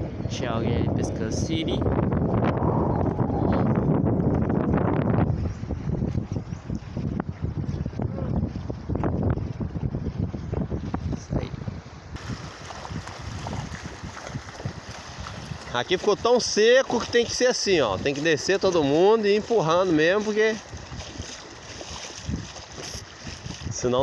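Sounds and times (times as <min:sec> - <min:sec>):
wind buffeting microphone: 0:00.0 - 0:24.0
water splashing around rowboat: 0:12.1 - 0:24.0.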